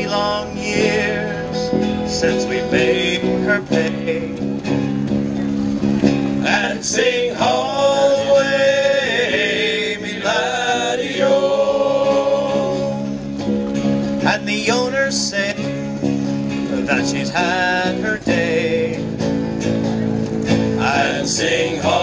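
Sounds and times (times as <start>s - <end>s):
men singing folk song: 0.0s - 4.6s, 6.3s - 19.6s, 20.6s - 22.0s
guitar accompaniment: 0.0s - 22.0s.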